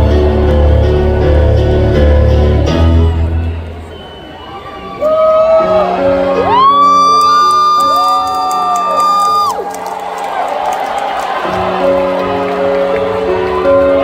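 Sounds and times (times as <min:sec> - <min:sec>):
held keyboard chords: 0:00.0 - 0:03.9, 0:11.3 - 0:14.0
crowd cheering: 0:03.0 - 0:14.0
audience member whooping: 0:05.0 - 0:09.8.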